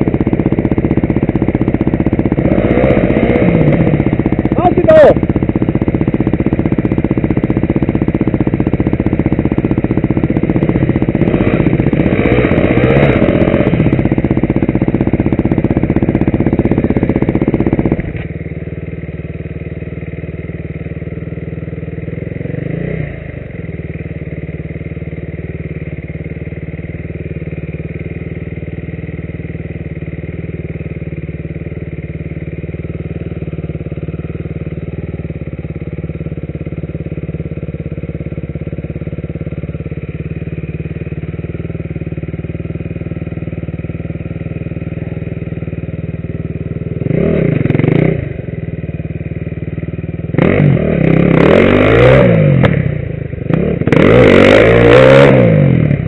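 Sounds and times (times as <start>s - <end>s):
motorcycle engine idling: 0.0s - 56.0s
motorcycle engine revving: 0.0s - 56.0s.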